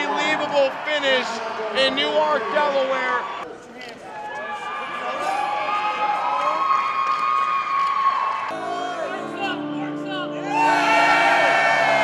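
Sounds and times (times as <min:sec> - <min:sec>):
men cheering and yelling: 0:10.4 - 0:12.0.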